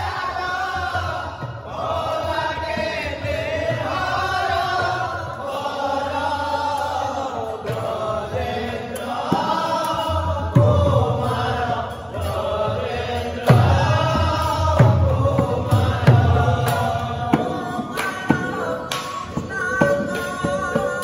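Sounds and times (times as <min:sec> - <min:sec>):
men chanting through microphones: 0:00.0 - 0:21.0
hand drum beats: 0:07.6 - 0:21.0.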